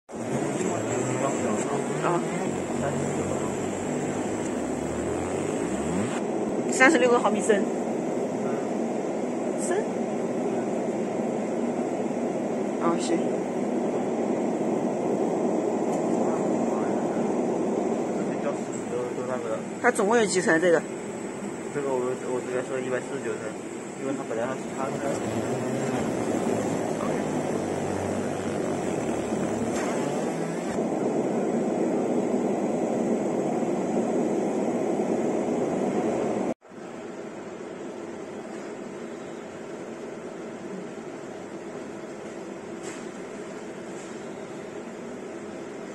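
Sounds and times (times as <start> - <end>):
laser engraving machine running: 0.1 - 6.2, 22.5 - 30.8
quieter steady hum: 0.1 - 6.8, 21.0 - 30.8.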